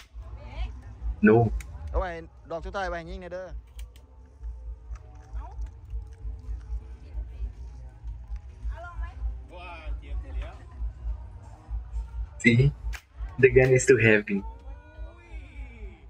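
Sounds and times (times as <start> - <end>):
background music with low beat: 0.0 - 16.0.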